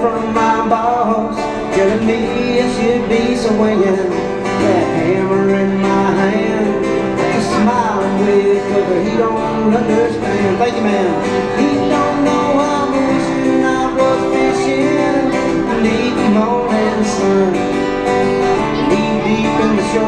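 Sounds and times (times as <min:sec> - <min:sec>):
man singing through pa: 0:00.0 - 0:20.0
strummed acoustic guitar: 0:00.0 - 0:20.0.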